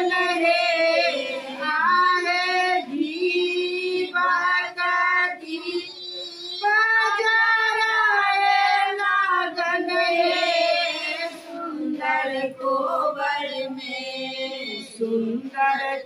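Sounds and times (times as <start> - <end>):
women singing unaccompanied: 0.0 - 16.0.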